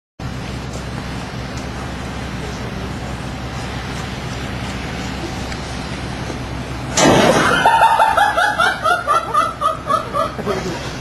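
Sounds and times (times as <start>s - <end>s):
person laughing: 7.4s - 11.0s.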